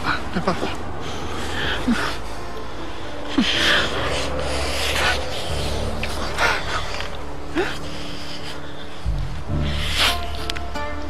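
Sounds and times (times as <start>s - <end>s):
heavy breathing: 0.0s - 10.8s.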